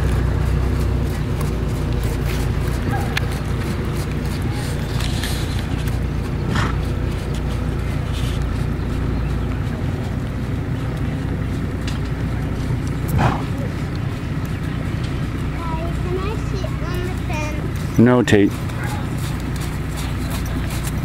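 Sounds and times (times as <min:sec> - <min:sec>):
steady low rumble: 0:00.0 - 0:21.0
people talking indistinctly: 0:13.1 - 0:20.2.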